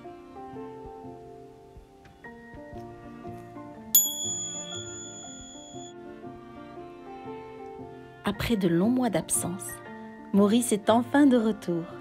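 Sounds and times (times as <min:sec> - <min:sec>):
gentle instrumental music: 0:00.0 - 0:12.0
high bell ding: 0:04.0 - 0:05.9.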